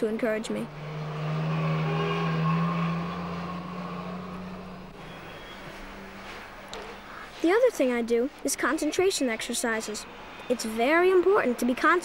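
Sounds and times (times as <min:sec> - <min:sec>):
passing vehicle engine hum: 0:00.0 - 0:07.1.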